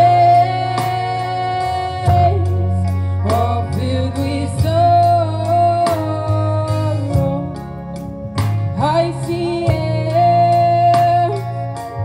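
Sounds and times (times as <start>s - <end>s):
woman singing: 0.0s - 7.9s, 8.7s - 12.0s
instrumental accompaniment with bass: 0.0s - 12.0s.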